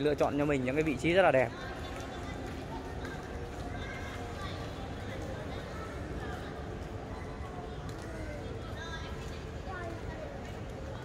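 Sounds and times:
low outdoor background noise: 0.0s - 11.0s.

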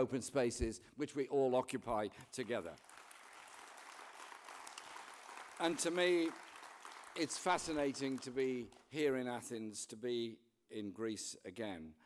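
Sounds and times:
audience clapping: 2.2s - 9.3s.

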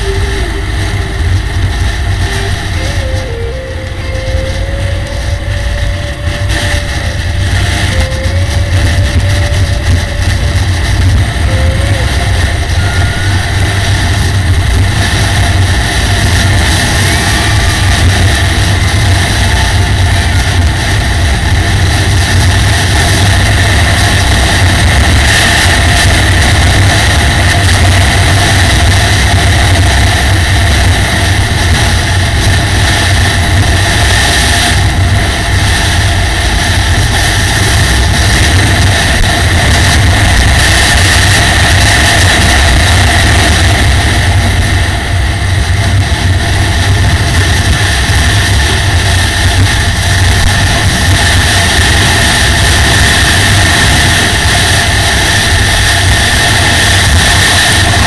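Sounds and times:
motorcycle engine cruising: 0.0s - 58.0s
wind noise: 0.0s - 58.0s.

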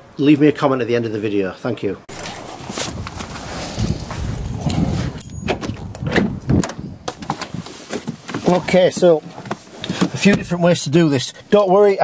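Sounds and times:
keys jingling: 3.7s - 5.6s
clicks knocks and rustles: 5.5s - 10.5s.

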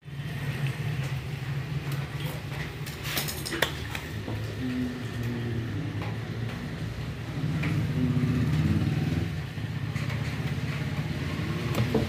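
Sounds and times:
low engine rumble: 4.0s - 12.0s.

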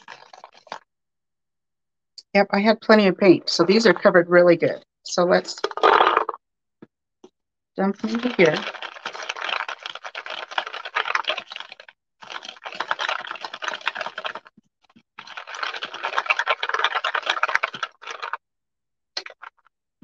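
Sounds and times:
beads rattling in a paper bowl: 0.0s - 0.8s, 5.5s - 6.4s, 7.9s - 18.4s.

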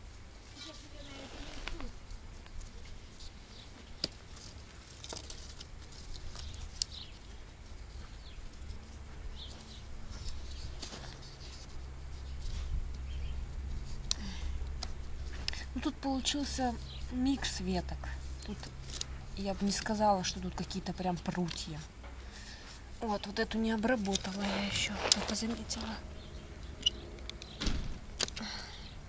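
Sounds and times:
branches rustling and clicking: 0.5s - 17.2s, 17.9s - 28.6s
low steady rumble: 5.8s - 29.0s.

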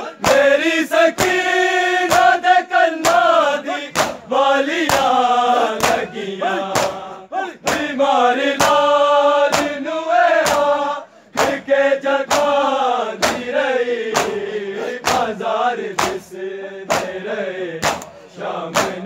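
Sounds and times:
hand strikes on chests: 0.0s - 5.2s, 5.8s - 8.9s, 9.5s - 19.0s
men chanting in unison: 0.0s - 19.0s.

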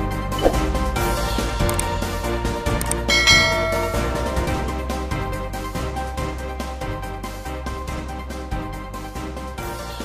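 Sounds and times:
background music: 0.0s - 10.0s
bell chime: 3.1s - 4.9s.

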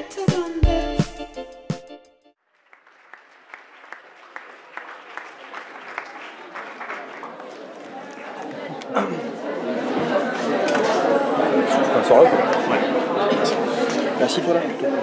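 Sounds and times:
audience murmuring: 4.1s - 15.0s.

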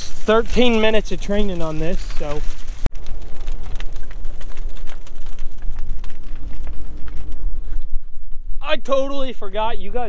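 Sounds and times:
fire crackling and popping: 0.0s - 10.0s.

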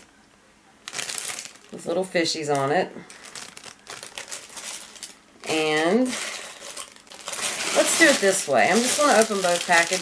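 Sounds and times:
plastic bag crinkling: 0.8s - 10.0s.

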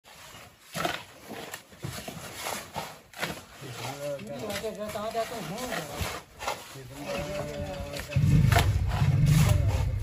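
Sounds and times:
shovels scraping wet mud: 0.1s - 10.0s.

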